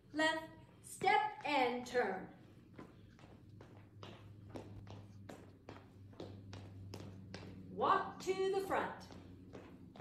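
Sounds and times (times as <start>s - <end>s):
steady low hum: 0.0s - 10.0s
footsteps on wooden floor: 2.7s - 7.8s, 9.0s - 10.0s.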